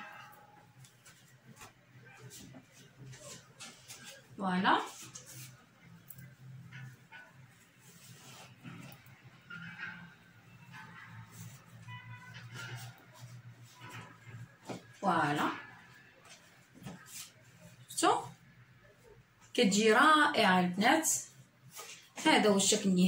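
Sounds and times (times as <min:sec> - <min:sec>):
fabric rustling: 0:00.0 - 0:19.2, 0:21.3 - 0:22.4.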